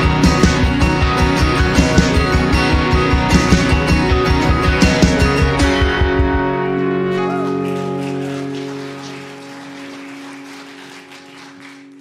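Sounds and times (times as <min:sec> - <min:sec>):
band chord with guitar ringing: 0:00.0 - 0:11.9.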